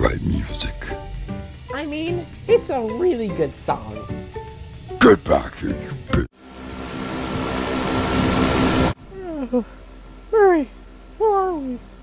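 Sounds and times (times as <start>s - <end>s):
aeroplane engine drone: 0.0s - 12.0s.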